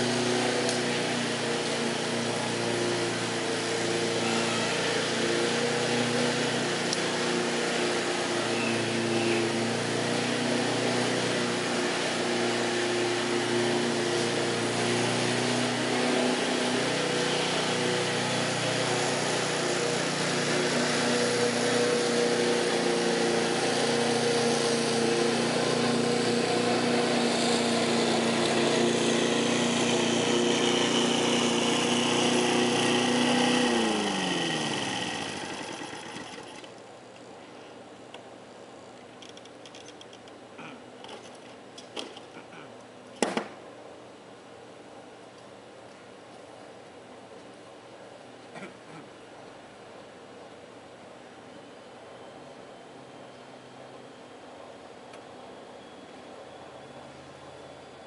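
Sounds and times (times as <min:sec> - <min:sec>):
lawn mower engine running: 0:00.0 - 0:36.8.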